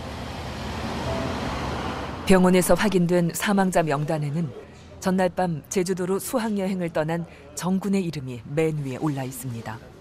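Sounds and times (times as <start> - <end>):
road traffic and street noise: 0.0 - 5.0.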